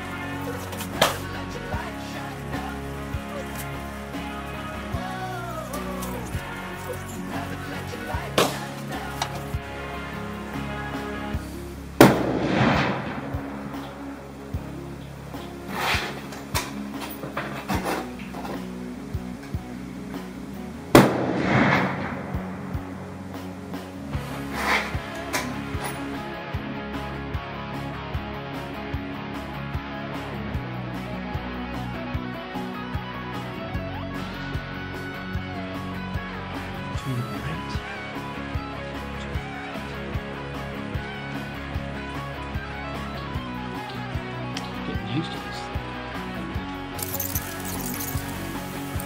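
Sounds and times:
background music: 0.0 - 49.0
rifle shots echoing: 12.0 - 14.1, 21.0 - 22.8.

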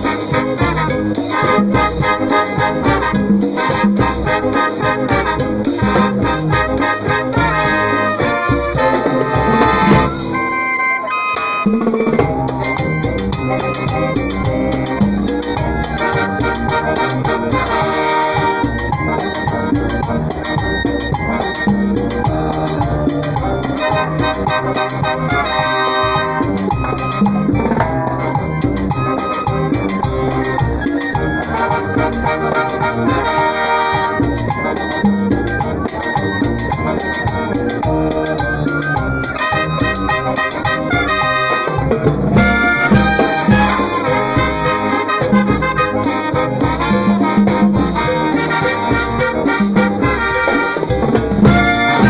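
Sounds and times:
bass drum: 0.0 - 10.5, 11.7 - 52.0
snare drums: 0.0 - 10.7, 11.3 - 52.0
brass band playing: 0.0 - 52.0.

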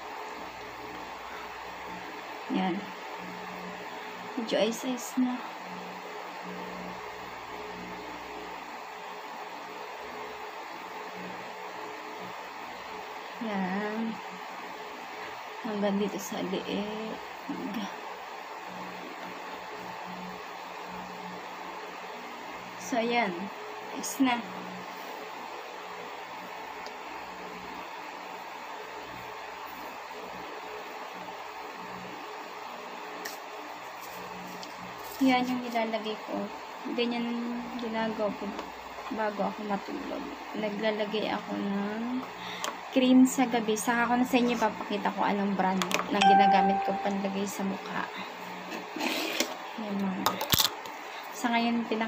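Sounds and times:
faint low hum: 0.0 - 48.9
room noise hiss: 0.0 - 52.0.

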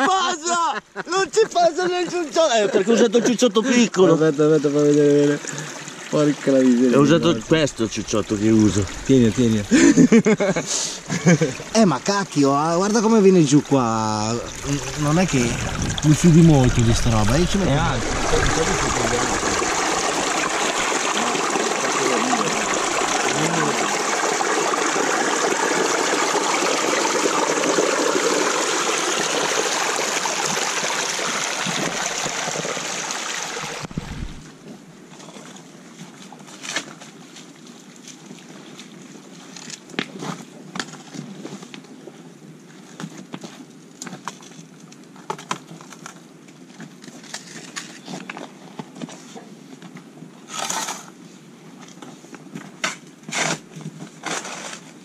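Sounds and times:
water rushing over metal: 4.2 - 34.4.

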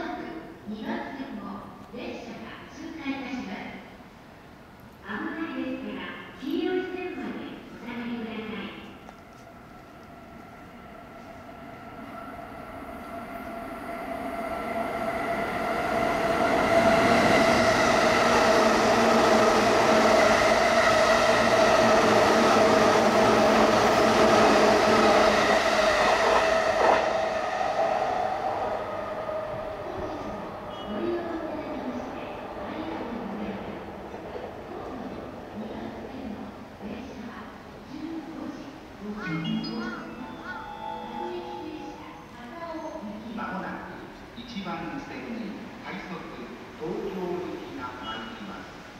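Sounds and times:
electric train passing with whine: 7.2 - 48.9.

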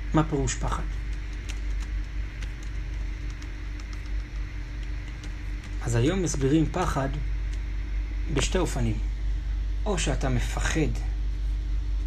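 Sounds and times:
low hum: 0.0 - 12.0
faint clicks: 1.0 - 5.8.

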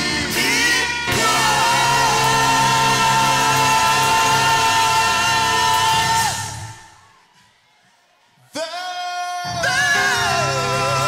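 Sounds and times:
man singing into microphone: 0.0 - 6.5, 8.6 - 11.0.

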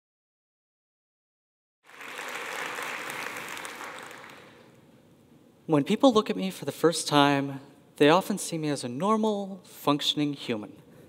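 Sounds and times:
audience applauding: 1.8 - 4.8.

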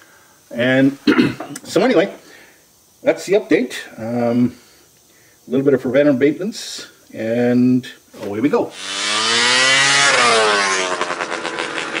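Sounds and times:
engine revving: 8.7 - 12.0.

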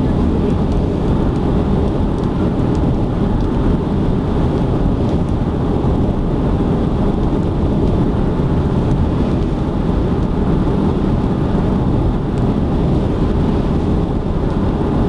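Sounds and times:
tyre and road noise: 0.0 - 15.0.

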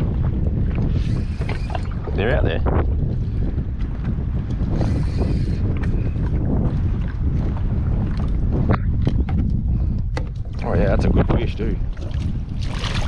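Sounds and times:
water lapping against kayak hull: 0.0 - 13.0
wind buffeting microphone: 0.0 - 13.0.

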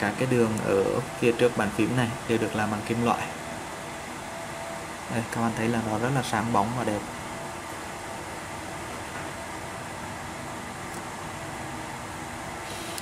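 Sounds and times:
room noise hiss: 0.0 - 13.0.

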